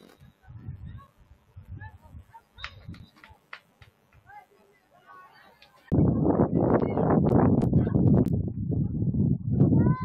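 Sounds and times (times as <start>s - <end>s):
voices calling: 0.2s - 7.0s.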